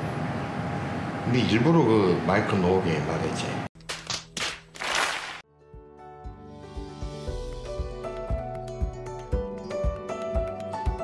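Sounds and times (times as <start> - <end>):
soft background music: 5.5 - 11.0.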